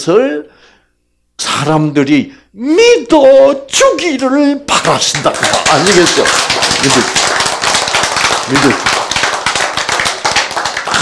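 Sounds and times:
person speaking: 1.4 - 7.2
crowd applause: 5.1 - 11.0.

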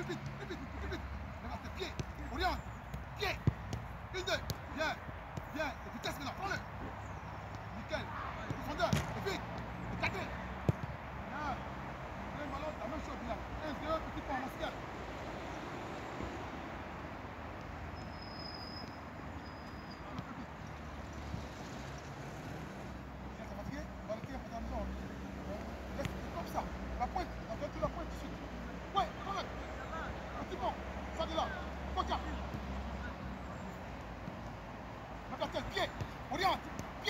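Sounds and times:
football being kicked: 1.8 - 5.6, 8.3 - 9.6, 10.6 - 11.0, 35.8 - 37.0.

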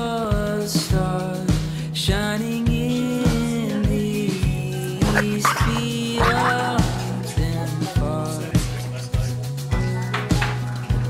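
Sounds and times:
background music with steady beat: 0.0 - 11.0
small dog yipping: 5.0 - 6.9.

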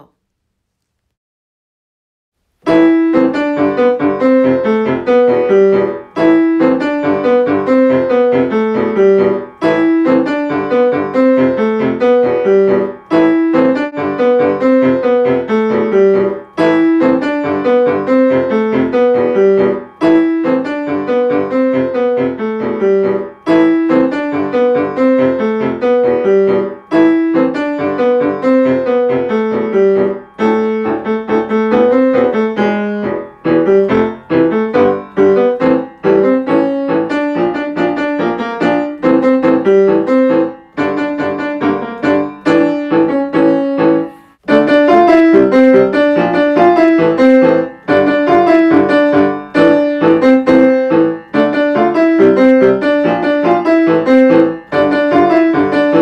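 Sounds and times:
solo piano: 2.4 - 56.0.

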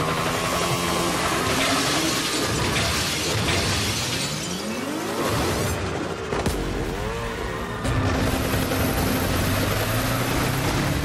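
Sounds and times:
glass shattering: 1.6 - 4.9
motorcycle engine revving: 5.0 - 11.0.

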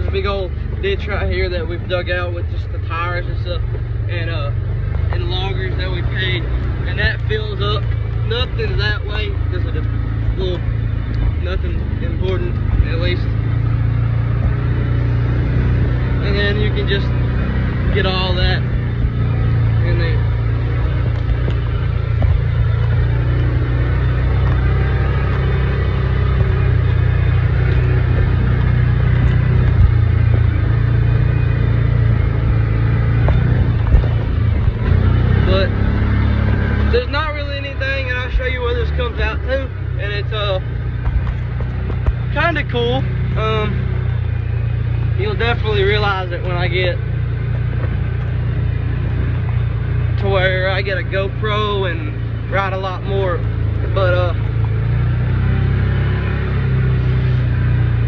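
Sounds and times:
engine droning: 0.0 - 58.0.

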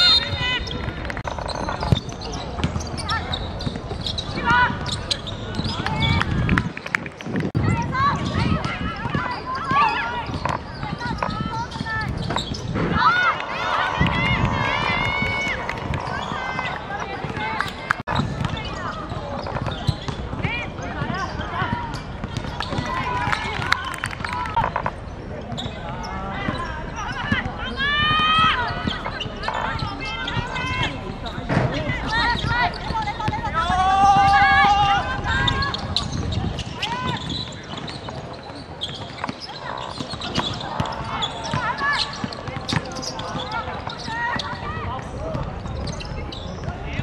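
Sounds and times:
women shouting and calling: 12.8 - 17.6.

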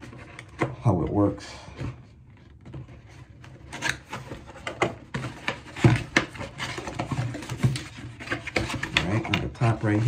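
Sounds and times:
cardboard box being opened: 2.6 - 10.0.

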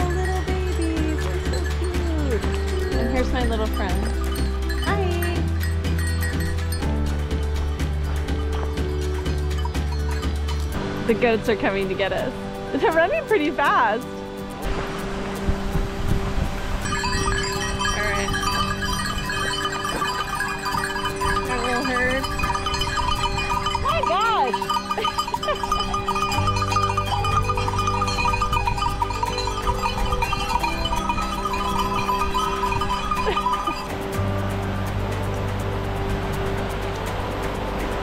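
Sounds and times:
background music with held notes: 0.0 - 38.0.

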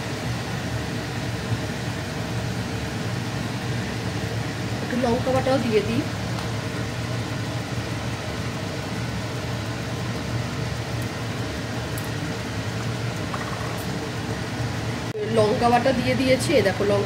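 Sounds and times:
fan humming: 0.0 - 17.0
paste frying in oil: 0.0 - 17.0.

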